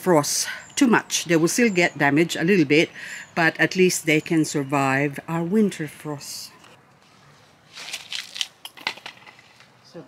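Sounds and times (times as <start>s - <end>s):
plastic pot crackling: 7.6s - 9.8s.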